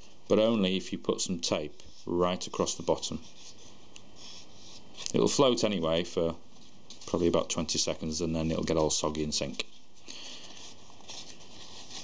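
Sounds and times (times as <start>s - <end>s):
room hiss: 0.0s - 12.0s
card rustling in hands: 6.5s - 12.0s.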